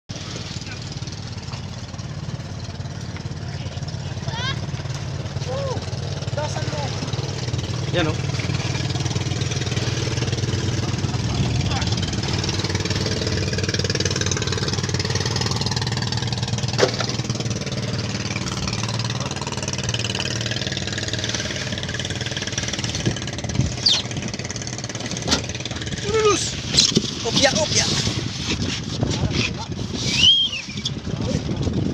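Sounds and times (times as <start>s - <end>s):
boat engine idling: 0.1s - 31.9s.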